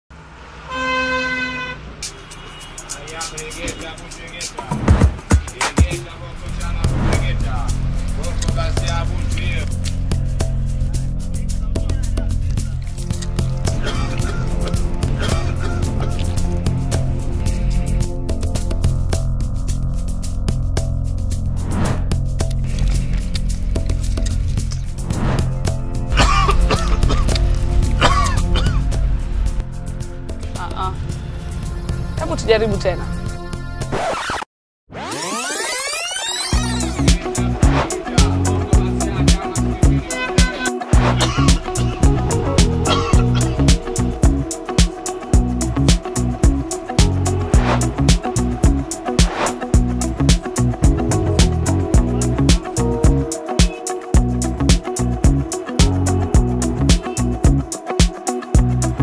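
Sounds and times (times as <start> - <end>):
vehicle horn toot: 0.7 - 4.2
background music with bass: 2.8 - 33.9, 36.5 - 59.0
person clearing throat: 13.8 - 16.2, 26.2 - 27.4, 28.0 - 28.8, 41.1 - 41.9, 42.8 - 43.7
low rumble: 15.9 - 33.6
music with ticking beat: 36.5 - 59.0.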